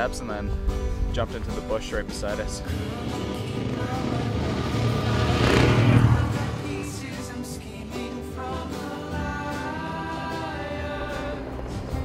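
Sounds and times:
background music: 0.0 - 12.0
off-road motorcycles riding past: 2.7 - 7.1.

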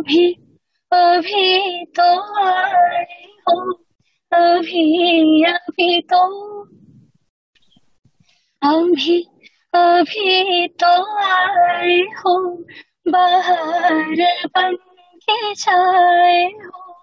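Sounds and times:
woman singing unaccompanied: 0.0 - 6.8, 8.6 - 17.0.

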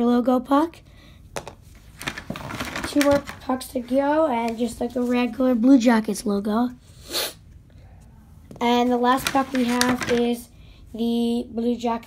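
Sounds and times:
cardboard and paper rustling: 1.7 - 5.4, 8.6 - 10.4.

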